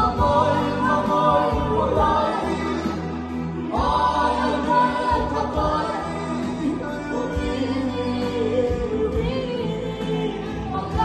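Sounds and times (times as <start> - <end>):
male choir singing: 0.0 - 11.0.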